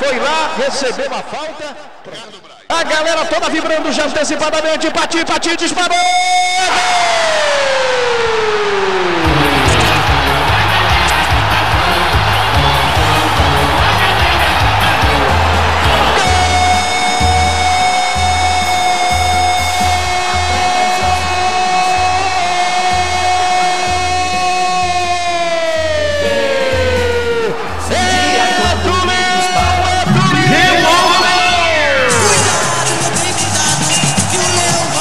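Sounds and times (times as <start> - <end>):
stadium crowd cheering: 0.0 - 35.0
music jingle with low beat: 9.2 - 22.2
man shouting drawn-out goal cry: 9.2 - 32.8.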